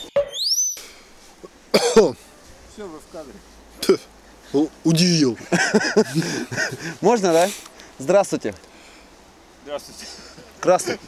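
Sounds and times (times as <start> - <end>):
high rising whistle-like squeak: 0.0 - 0.8.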